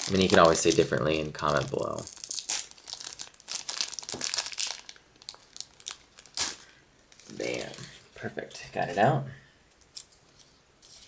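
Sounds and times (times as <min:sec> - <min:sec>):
plastic crinkling: 0:00.0 - 0:08.1.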